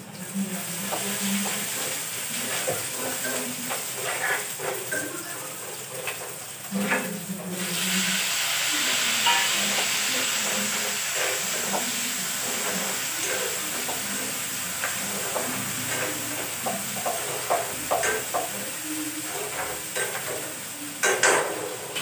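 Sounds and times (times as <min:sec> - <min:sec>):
food sizzling in a pan: 0:00.0 - 0:22.0
utensils tapping a pan: 0:00.8 - 0:07.6, 0:08.8 - 0:22.0.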